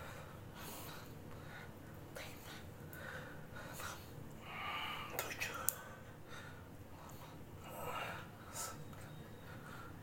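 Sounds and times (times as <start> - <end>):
man whispering: 2.1 - 2.8, 4.9 - 6.0
man breathing hard: 2.5 - 5.2, 6.0 - 10.0.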